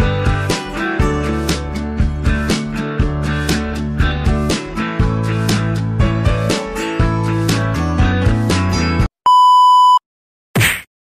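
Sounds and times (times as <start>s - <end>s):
electronic beep: 9.3s - 10.0s.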